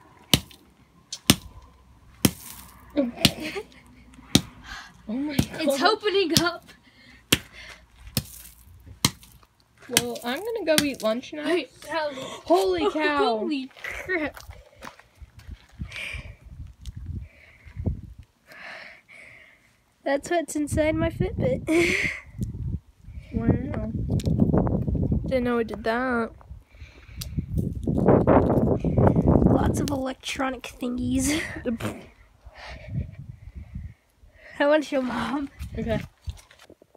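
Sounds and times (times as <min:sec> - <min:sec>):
hammer blows on gravel: 0:02.2 - 0:03.5, 0:05.3 - 0:11.2
crackling plastic handling noise: 0:36.1 - 0:36.9.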